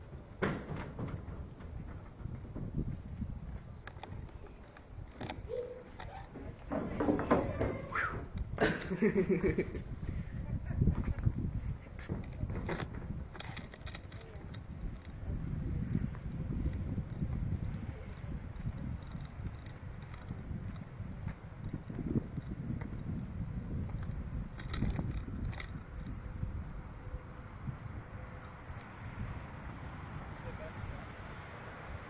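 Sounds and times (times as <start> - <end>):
wind rumble: 0.0 - 32.0
microphone handling noise: 1.0 - 26.8.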